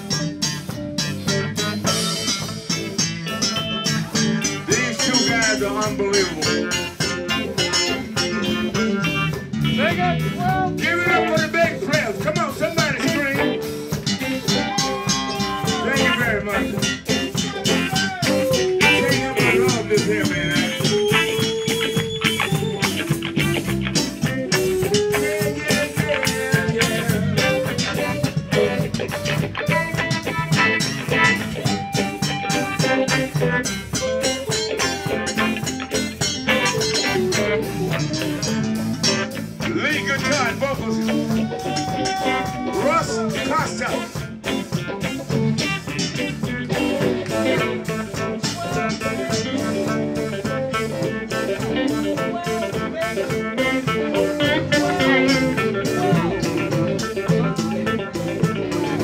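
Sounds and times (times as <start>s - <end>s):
drums: 0.0s - 59.0s
electric bass: 0.0s - 59.0s
electric guitar: 0.0s - 59.0s.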